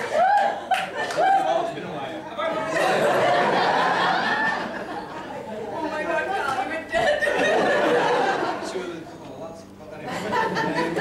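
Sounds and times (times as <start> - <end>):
crowd chatter: 1.2 - 11.0.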